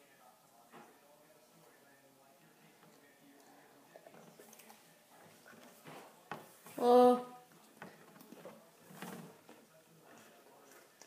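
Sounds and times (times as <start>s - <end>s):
faint clicks and rustles: 2.5s - 6.8s, 7.5s - 11.0s.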